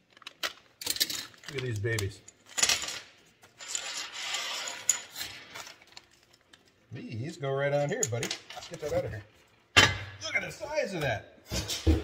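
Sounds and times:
metal pieces sliding on workbench: 2.6s - 5.8s.

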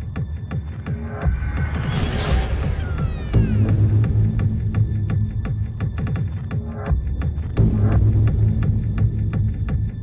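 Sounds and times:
hard trance music: 0.0s - 9.6s.

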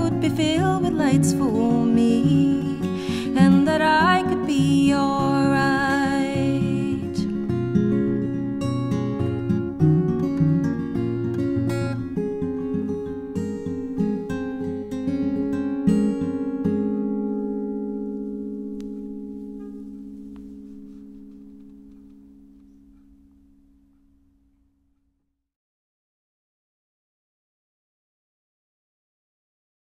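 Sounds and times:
acoustic guitar playing: 0.0s - 25.1s.

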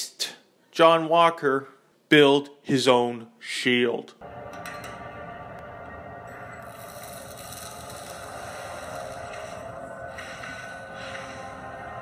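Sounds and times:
soundtrack music: 4.2s - 12.0s.

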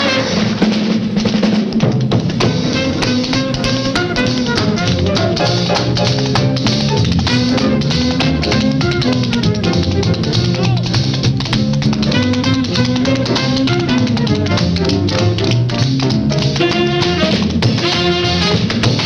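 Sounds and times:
up-tempo jazz band music: 0.0s - 19.0s.

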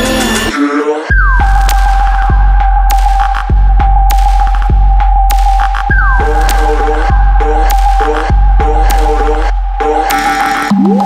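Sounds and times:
electronic track with sub-bass: 0.0s - 11.0s.

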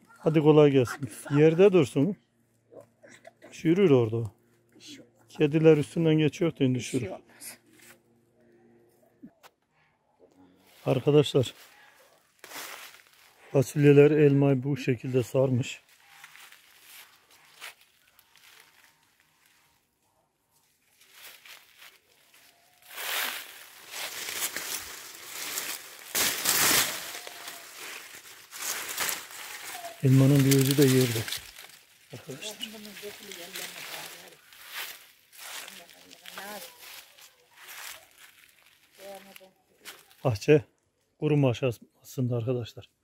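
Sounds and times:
person speaking: 3.7s - 7.6s, 24.0s - 34.5s
rustle of dry leaves: 10.6s - 13.8s, 15.2s - 40.3s.

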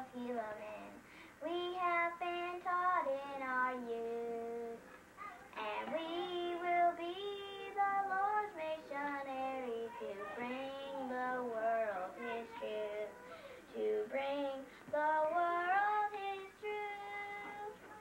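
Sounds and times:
girl singing: 0.0s - 18.0s.

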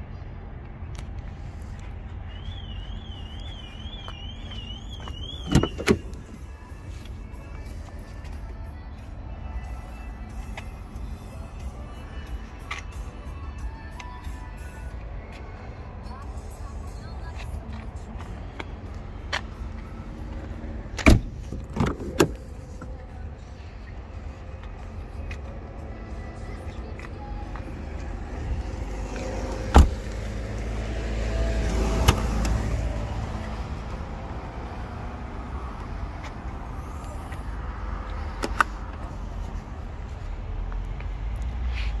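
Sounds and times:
car door shutting: 5.0s - 6.5s, 21.0s - 22.6s, 29.6s - 30.2s, 32.0s - 32.7s
tailgate latch click: 5.4s - 6.2s, 21.0s - 22.4s, 29.7s - 30.0s.

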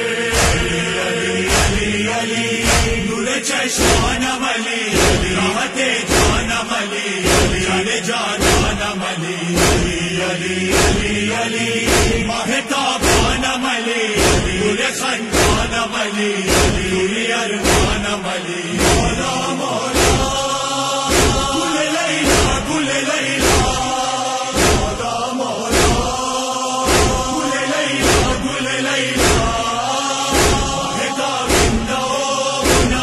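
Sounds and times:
men chanting in unison: 0.0s - 33.0s
chest-beating thuds: 0.3s - 0.8s, 1.5s - 2.0s, 2.6s - 3.2s, 3.8s - 7.8s, 8.4s - 9.0s, 9.6s - 10.1s, 10.7s - 12.4s, 13.0s - 13.6s, 14.2s - 15.9s, 16.5s - 17.0s, 17.6s - 18.2s, 18.8s - 19.3s, 19.9s - 20.5s, 21.1s - 22.8s, 23.4s - 23.9s, 24.5s - 25.1s, 25.7s - 26.3s, 26.9s - 28.5s, 29.2s - 29.7s, 30.3s - 32.0s, 32.6s - 33.0s.

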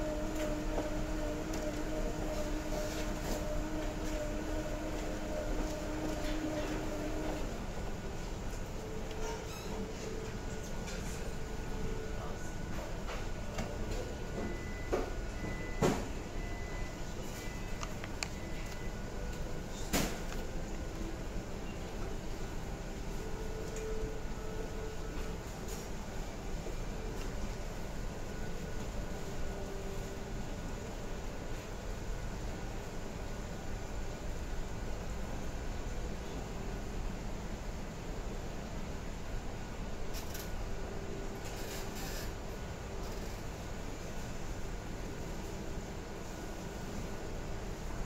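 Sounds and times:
room background noise: 0.0s - 48.0s.

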